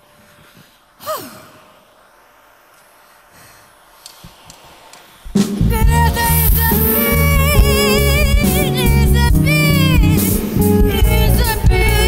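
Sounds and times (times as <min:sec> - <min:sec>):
woman sighing: 0:01.0 - 0:01.8.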